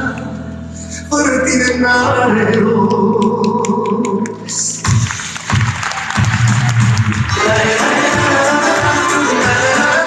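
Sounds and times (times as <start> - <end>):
audience clapping: 3.2 - 10.0.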